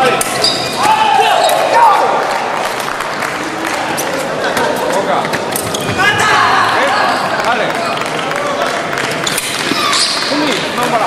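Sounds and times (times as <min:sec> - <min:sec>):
crowd voices: 0:00.0 - 0:11.0
shoe squeaks: 0:00.3 - 0:01.6, 0:05.6 - 0:06.0, 0:09.2 - 0:10.6.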